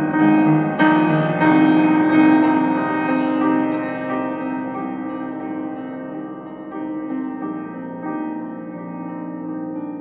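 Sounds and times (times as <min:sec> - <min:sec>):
slow piano chords: 0:00.0 - 0:10.0.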